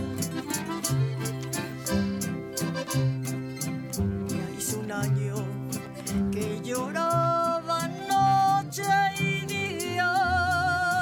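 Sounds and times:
accordion: 0:00.0 - 0:11.0
guitar: 0:00.0 - 0:11.0.

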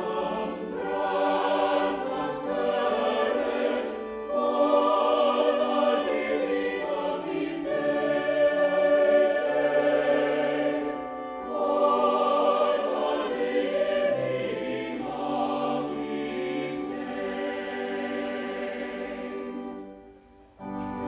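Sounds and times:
mixed choir singing: 0:00.0 - 0:20.2.

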